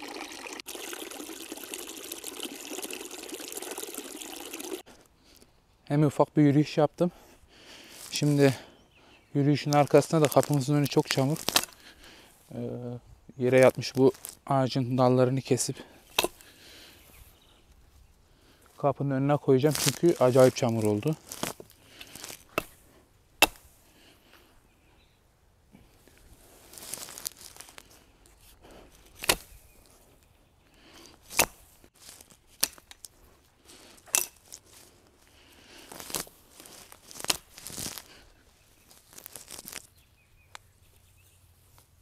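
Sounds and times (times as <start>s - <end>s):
branches rustling and snapping: 9.5s - 12.2s, 13.5s - 14.5s, 16.0s - 18.1s, 19.6s - 24.4s, 26.1s - 41.0s
axe chopping: 16.1s - 16.4s, 21.3s - 22.8s, 23.4s - 23.8s, 29.1s - 29.6s, 31.2s - 31.7s, 32.5s - 33.0s, 34.0s - 34.4s, 37.2s - 37.6s.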